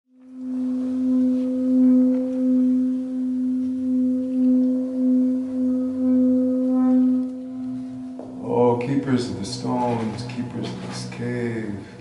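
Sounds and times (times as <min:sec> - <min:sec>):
singing bowl sustained tone: 0:00.1 - 0:12.0.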